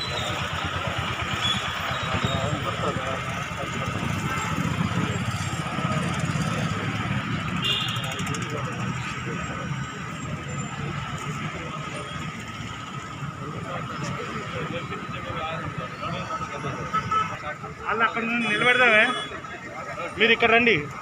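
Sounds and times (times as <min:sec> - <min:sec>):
cars passing: 0:00.0 - 0:21.0
motorcycles passing: 0:00.0 - 0:21.0
people's voices: 0:00.0 - 0:21.0.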